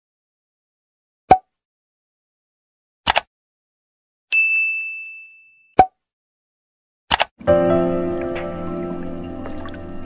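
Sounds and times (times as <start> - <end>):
notification bell ding: 4.4 - 5.7
short sharp click: 7.1 - 7.3.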